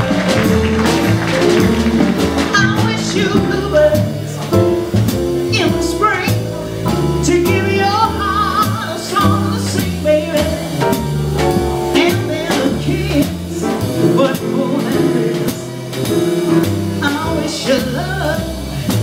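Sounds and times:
drum kit cymbals: 0.0 - 19.0
piano: 0.0 - 19.0
upright bass walking: 0.0 - 19.0
woman singing: 2.5 - 4.5, 5.5 - 10.8, 11.9 - 15.8, 17.0 - 19.0.

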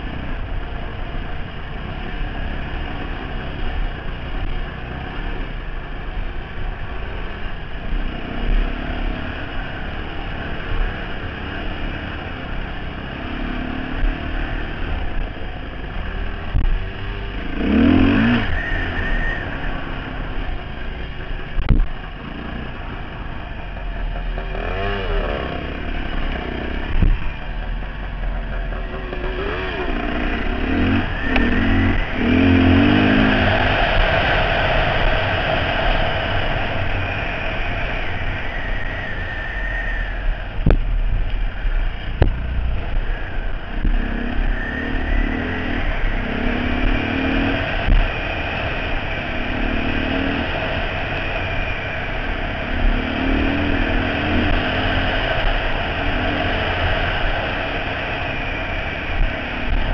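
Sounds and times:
dirt bike engine revving: 7.1 - 40.4, 42.3 - 59.9.

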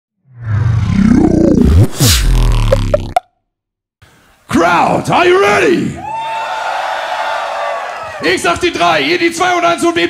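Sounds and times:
whoosh: 0.2 - 3.0
electronic bass with pitch sweeps: 0.3 - 3.3
electronic blips: 0.6 - 3.3.

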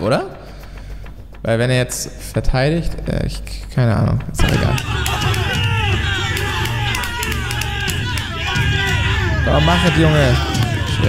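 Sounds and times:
background music with bass: 0.0 - 11.0
crowd cheering and shouting: 4.4 - 11.0.

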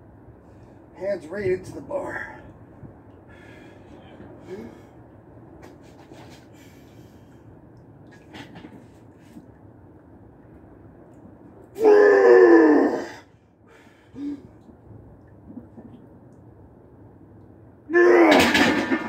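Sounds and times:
man straining yell: 11.8 - 13.2, 17.9 - 19.0.

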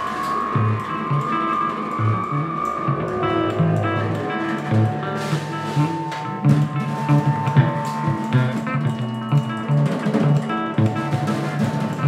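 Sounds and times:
held electric guitar tone: 0.0 - 12.0
low bass notes: 0.0 - 12.0.

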